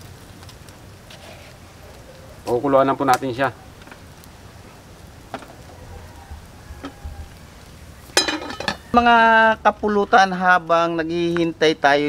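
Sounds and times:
pot boiling over fire: 0.0s - 12.0s.

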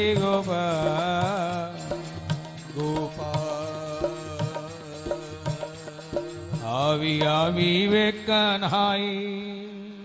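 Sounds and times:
wordless singing: 0.0s - 10.0s.

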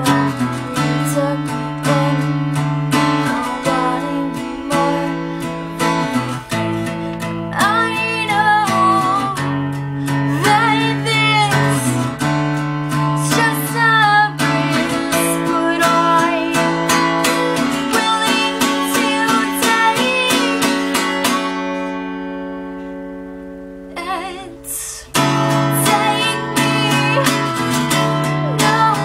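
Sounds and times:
woman singing: 0.0s - 21.4s, 23.9s - 29.0s
acoustic guitar strumming: 0.0s - 29.0s.

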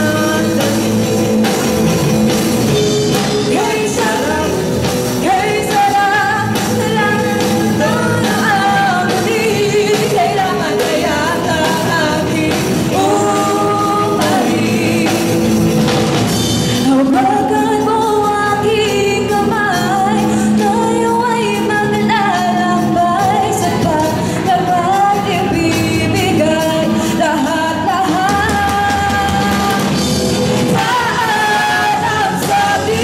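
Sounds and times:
woman singing: 0.0s - 1.3s, 2.8s - 16.0s, 16.7s - 33.0s
drums: 0.0s - 33.0s
electric guitars: 0.0s - 33.0s.

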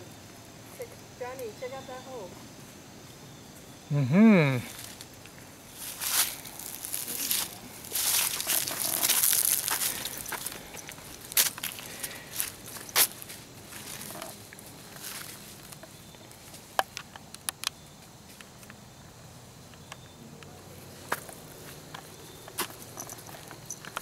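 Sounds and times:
footsteps crunching dry leaves: 4.7s - 16.7s.

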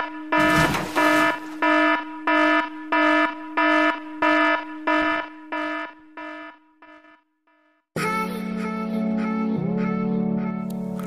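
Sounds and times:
electronic warning beeps: 0.0s - 7.2s.

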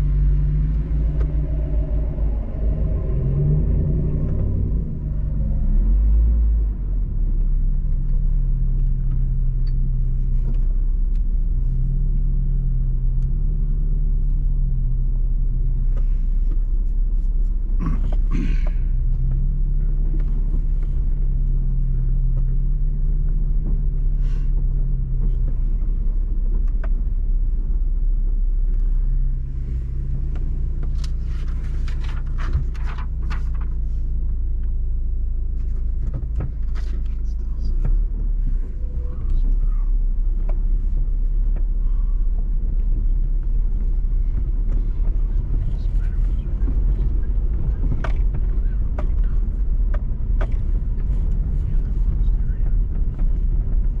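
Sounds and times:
vehicle engine low rumble: 0.0s - 54.0s.

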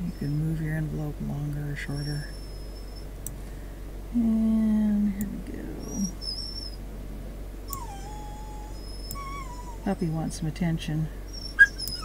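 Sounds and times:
dog whining: 1.9s - 3.1s, 5.8s - 6.8s, 7.7s - 9.9s, 11.3s - 12.0s.

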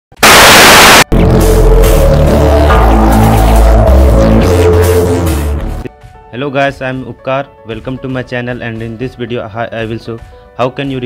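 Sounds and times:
intro music with deep bass: 0.2s - 6.3s.

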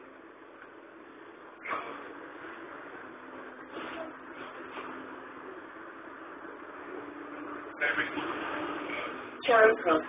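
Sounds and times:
vehicle hum and road noise: 0.0s - 10.0s.

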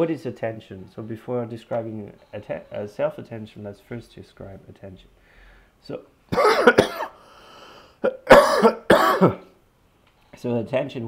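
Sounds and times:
man coughing: 6.3s - 7.2s, 8.0s - 9.5s.

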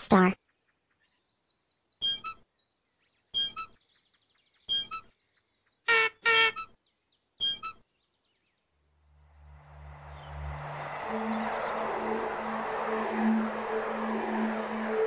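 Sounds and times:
faint bird chirping: 0.4s - 9.0s
short pitched toots: 7.4s - 7.8s
low rumbling noise: 9.2s - 15.0s.

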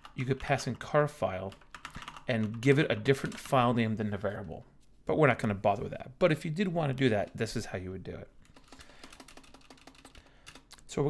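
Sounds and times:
keyboard typing: 1.5s - 3.7s, 8.4s - 10.9s.

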